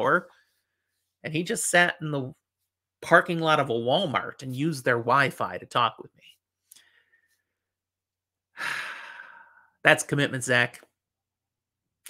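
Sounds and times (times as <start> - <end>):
man speaking: 0.0 - 0.3, 1.2 - 2.4, 3.0 - 6.4, 9.8 - 10.9
man sighing: 8.6 - 9.7.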